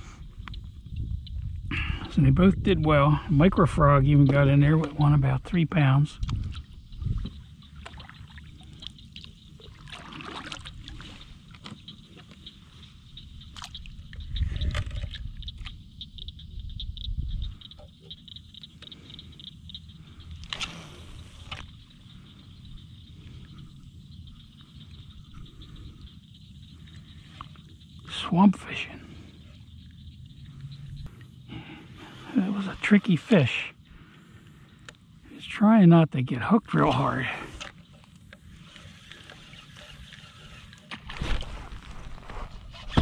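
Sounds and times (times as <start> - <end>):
water drips: 6.2 - 20.6
paddle strokes sloshing water: 7.2 - 12.6.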